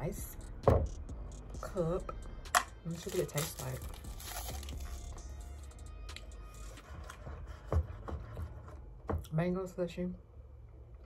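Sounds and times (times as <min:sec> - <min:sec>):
faint background music: 0:00.0 - 0:10.9
paper wrapper tearing and crinkling: 0:02.9 - 0:05.2.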